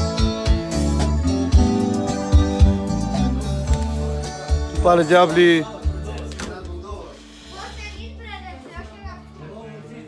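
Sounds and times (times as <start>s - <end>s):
people talking indistinctly: 0.1s - 10.0s
quiet background music: 0.4s - 10.0s.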